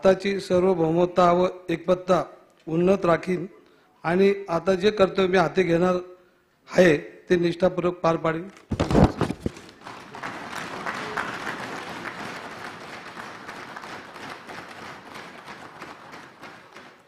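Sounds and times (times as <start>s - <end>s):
people applauding: 9.3s - 17.0s.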